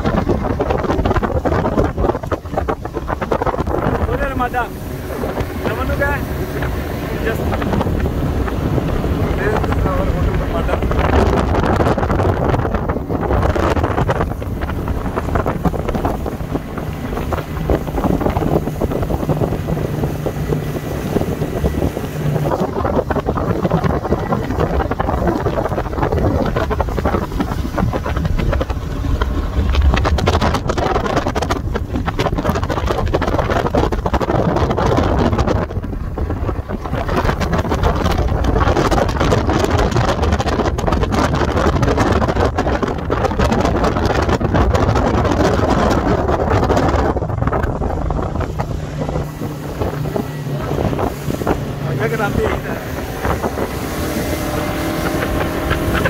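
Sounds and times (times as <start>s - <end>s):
speedboat engine running: 0.0s - 56.0s
water rushing past hull: 0.0s - 56.0s
wind buffeting microphone: 0.0s - 56.0s.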